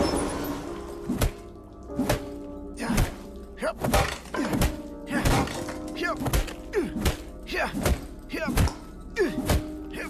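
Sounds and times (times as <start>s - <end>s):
background music with low tones: 0.0s - 10.0s.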